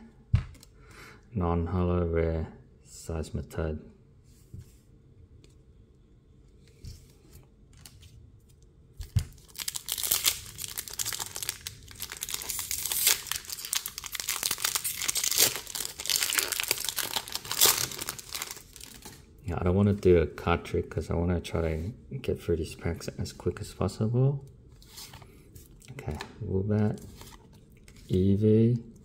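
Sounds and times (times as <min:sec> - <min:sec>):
foil wrapper tearing and crinkling: 0:09.1 - 0:19.2.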